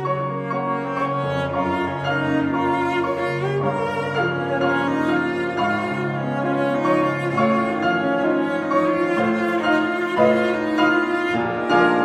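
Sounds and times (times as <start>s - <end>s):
cello bowed notes: 0.0s - 12.0s
piano accompaniment: 0.0s - 12.0s.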